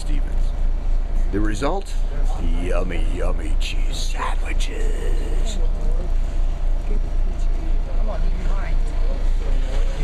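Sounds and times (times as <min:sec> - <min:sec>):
people talking: 0:00.0 - 0:00.5, 0:01.4 - 0:06.1.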